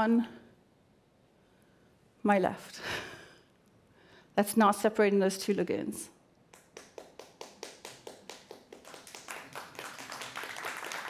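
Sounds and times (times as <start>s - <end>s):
faint quick hand clapping: 6.5s - 11.0s.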